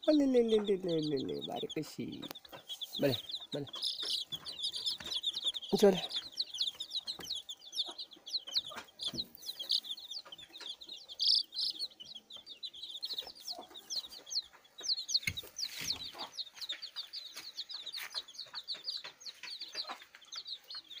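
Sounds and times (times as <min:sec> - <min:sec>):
chicks peeping: 0:00.0 - 0:21.0.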